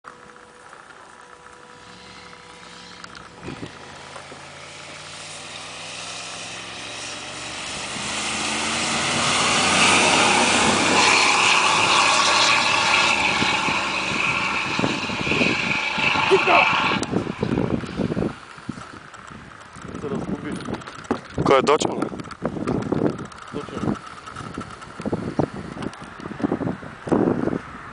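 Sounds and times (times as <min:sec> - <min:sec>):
truck engines accelerating: 0:00.0 - 0:27.9.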